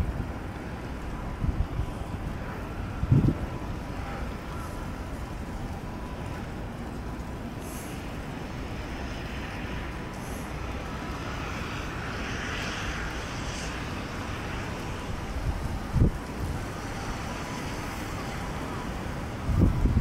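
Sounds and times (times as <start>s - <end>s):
distant city hum: 0.0s - 20.0s
wind rumbling on microphone: 0.0s - 20.0s.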